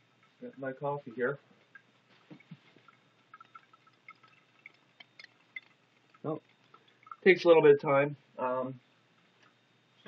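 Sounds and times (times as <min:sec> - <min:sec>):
coffee dripping into glass pot: 0:01.1 - 0:07.7.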